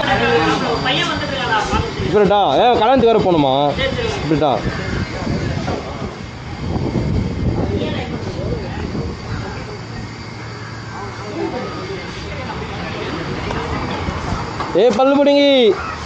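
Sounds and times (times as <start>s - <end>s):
indistinct chatter: 0.0s - 16.0s
vehicle engine hum: 0.0s - 16.0s.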